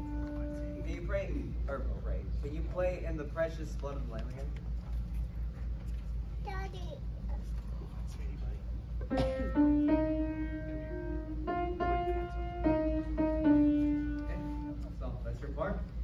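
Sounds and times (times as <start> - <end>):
slow piano hymn melody: 0.0 - 1.0, 9.1 - 14.8.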